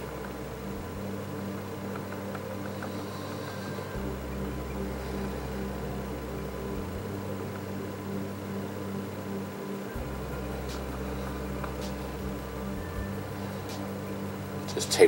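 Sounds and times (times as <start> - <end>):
low electrical hum: 0.0 - 15.0.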